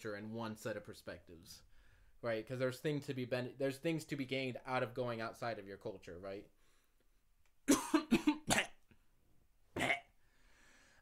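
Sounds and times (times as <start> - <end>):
man coughing: 7.7 - 8.8, 9.8 - 10.2.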